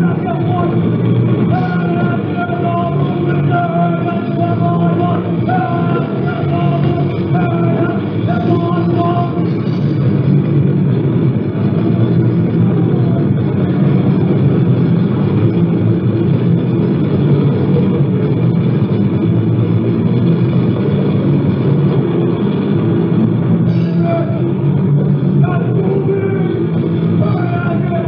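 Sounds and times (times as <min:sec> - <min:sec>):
muffled punk band playing: 0:00.0 - 0:28.0.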